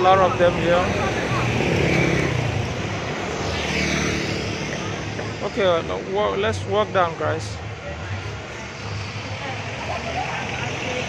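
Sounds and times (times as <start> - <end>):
faint voices: 0.0 - 3.3, 4.4 - 11.0
passing traffic hum: 0.0 - 11.0.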